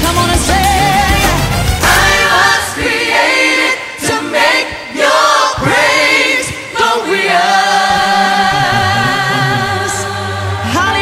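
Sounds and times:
bass line: 0.0s - 2.6s, 7.9s - 10.2s
gospel choir singing: 0.0s - 11.0s.

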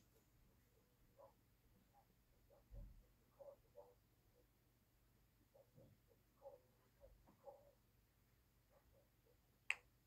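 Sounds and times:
finger snap: 9.7s - 9.9s.

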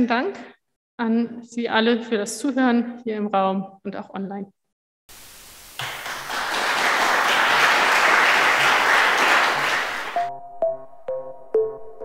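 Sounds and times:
audience applause: 5.6s - 10.3s.

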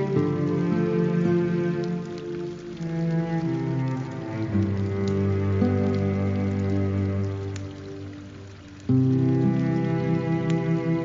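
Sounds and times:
calm instrumental music: 0.0s - 11.0s
patter of falling water: 0.0s - 11.0s.

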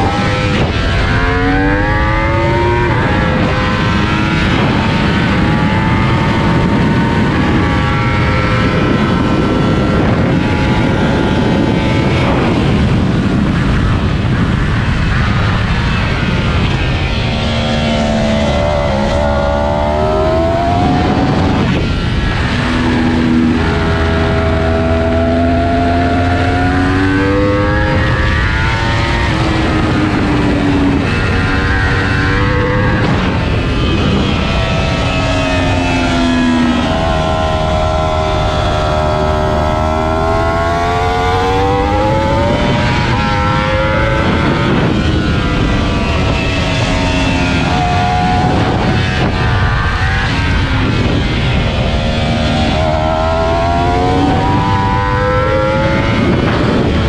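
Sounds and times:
heavy wind rush: 0.0s - 57.0s
motorcycle engine revving: 0.0s - 57.0s.

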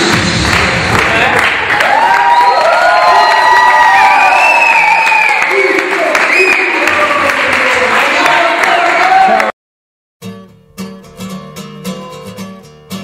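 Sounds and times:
people cheering and clapping: 0.0s - 9.6s.

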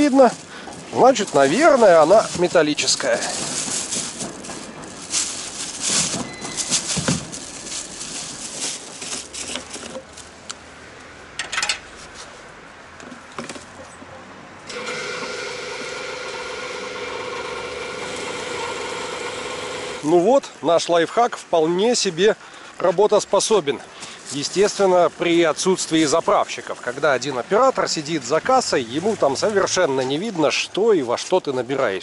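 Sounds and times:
plastic bag rustling: 0.0s - 10.4s, 23.5s - 30.5s
petrol pump humming: 14.7s - 20.0s.

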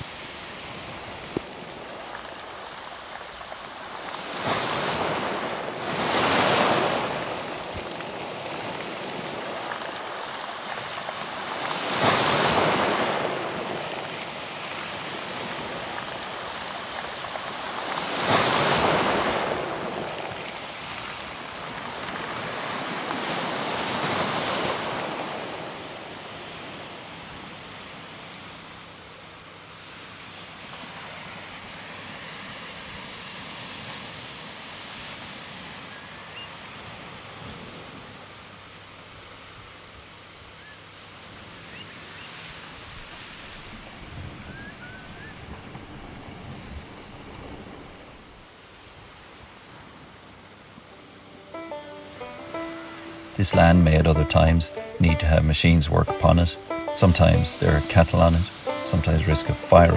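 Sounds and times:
waves breaking on pebble beach: 0.0s - 40.3s, 41.0s - 50.9s, 52.1s - 59.9s
steady rush of water: 0.0s - 59.9s.

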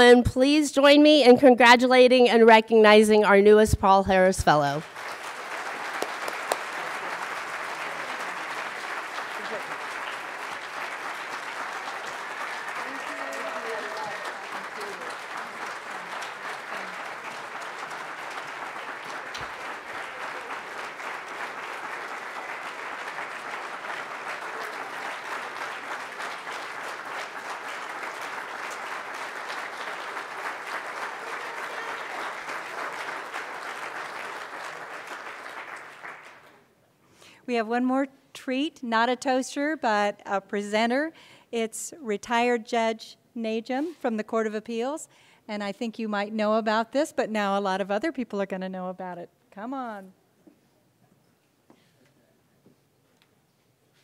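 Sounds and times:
audience applauding: 4.8s - 36.6s.

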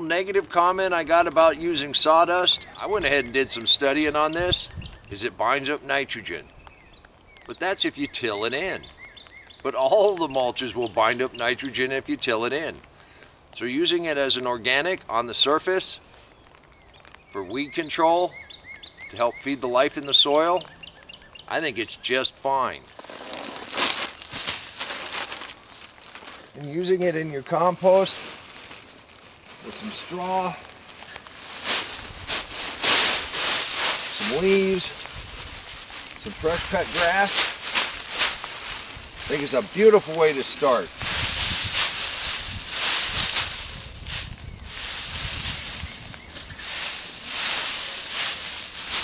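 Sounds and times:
crackles: 0.0s - 49.0s
dry leaves rustling and crunching: 22.7s - 49.0s
garden fork digging compost: 23.0s - 28.4s, 29.6s - 35.2s, 35.8s - 49.0s.

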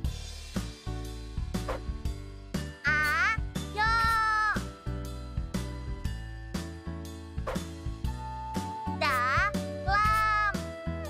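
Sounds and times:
children's music with steady beat: 0.0s - 11.0s
child's drawn-out voice: 2.8s - 4.7s, 8.9s - 10.7s.

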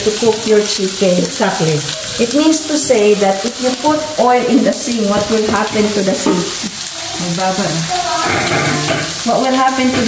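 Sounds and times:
person speaking: 0.0s - 9.5s
chicken sizzling in a pan: 0.0s - 10.0s.

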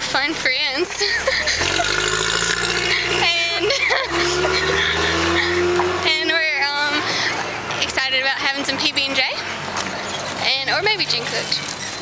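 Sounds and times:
vehicle engine humming: 0.0s - 12.0s
women laughing: 0.9s - 6.0s.

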